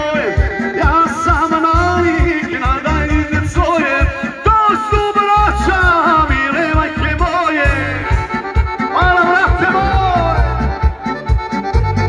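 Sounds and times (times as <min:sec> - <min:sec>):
fast steady bass beat: 0:00.0 - 0:12.0
folk dance music: 0:00.0 - 0:12.0.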